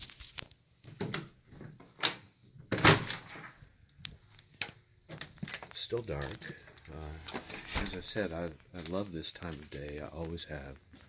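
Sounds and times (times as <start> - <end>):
door opening and shutting: 1.0 - 3.6, 7.2 - 8.2.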